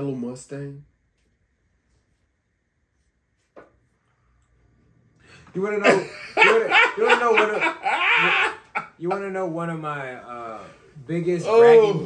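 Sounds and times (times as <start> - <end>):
man laughing hard: 5.8 - 9.0.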